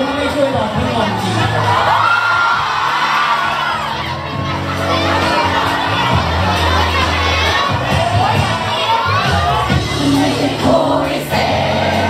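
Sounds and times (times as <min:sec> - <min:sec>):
crowd screaming and cheering: 0:00.0 - 0:12.0
pop instrumental backing track: 0:00.0 - 0:12.0.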